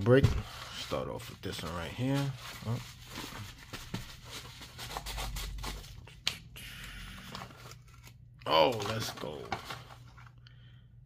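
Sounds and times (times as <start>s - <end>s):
paper mailer crinkling and tearing: 7.2s - 10.3s.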